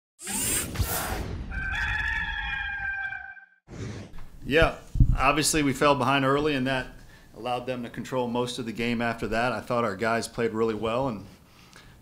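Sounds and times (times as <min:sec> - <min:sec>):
rooster crowing: 0:01.5 - 0:03.6.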